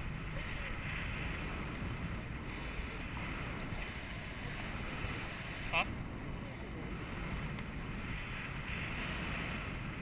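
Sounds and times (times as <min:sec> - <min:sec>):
wind rushing over microphone: 0:00.0 - 0:10.0.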